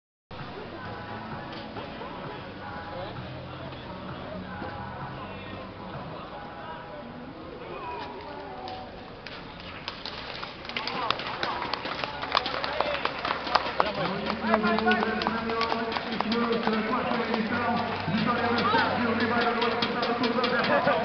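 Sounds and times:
voices of riders and spectators: 0.4s - 21.0s.

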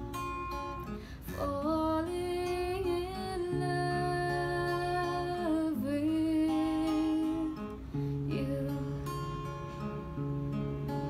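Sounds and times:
slow acoustic guitar: 0.0s - 11.0s.

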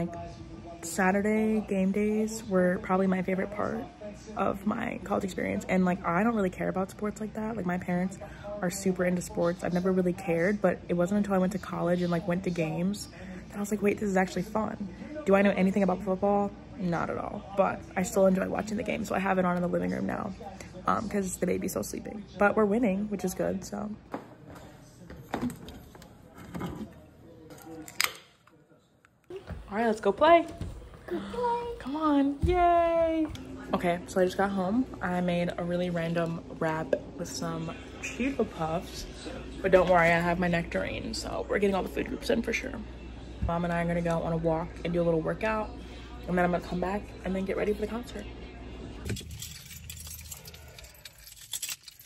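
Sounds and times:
metallic jangle: 49.1s - 52.0s.

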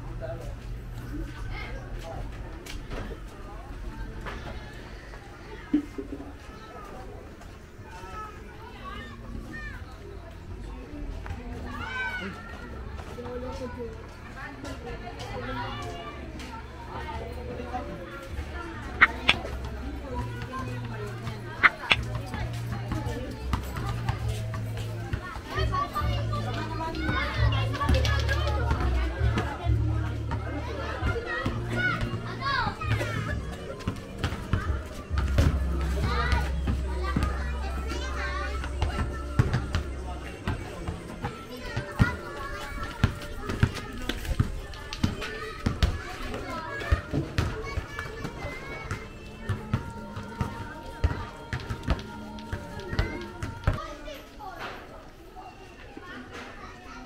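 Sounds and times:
children shouting and talking: 0.0s - 57.0s
basketballs bouncing on concrete: 39.4s - 39.9s, 43.0s - 46.0s.

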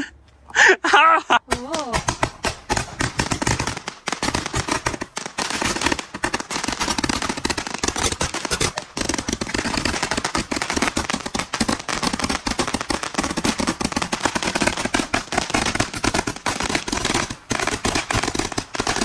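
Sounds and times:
person crying out: 0.6s - 2.1s
firework pops and crackle: 1.5s - 19.0s.

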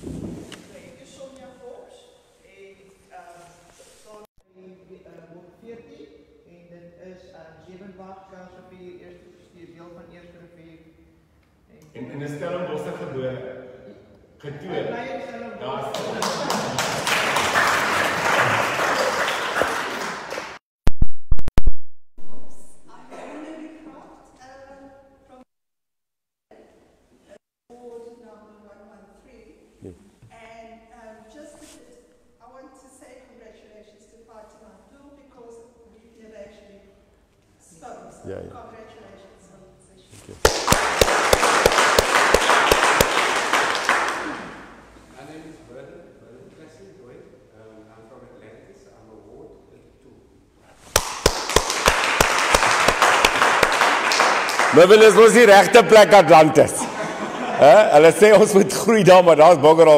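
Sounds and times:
audience clapping: 15.9s - 20.6s, 40.4s - 44.7s, 50.9s - 56.6s.

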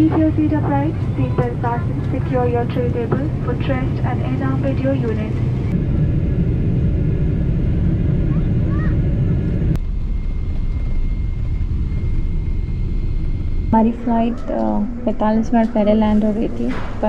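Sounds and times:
cabin hum: 0.0s - 17.0s
jet engines rumbling in cabin: 0.0s - 17.0s.

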